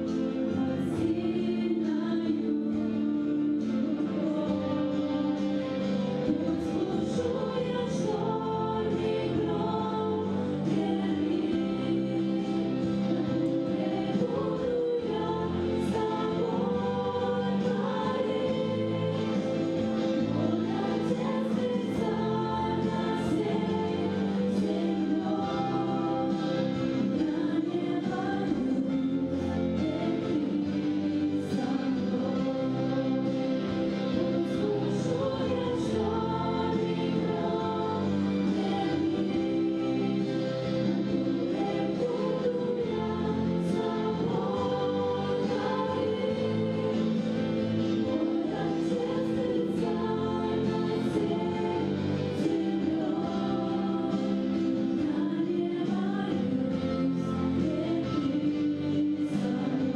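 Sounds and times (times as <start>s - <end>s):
women singing together: 0.0s - 59.9s.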